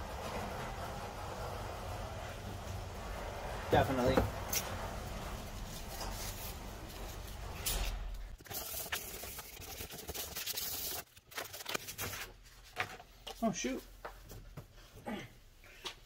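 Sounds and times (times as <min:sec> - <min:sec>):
sandpaper rubbing on metal: 0:08.4 - 0:11.0.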